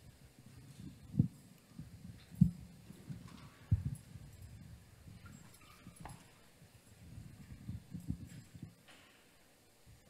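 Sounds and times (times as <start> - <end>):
dull low thumps: 0.0 - 5.3.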